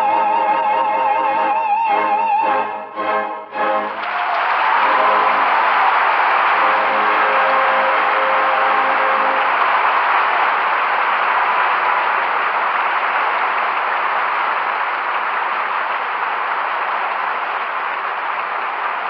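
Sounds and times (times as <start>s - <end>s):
audience applauding: 3.7s - 19.0s.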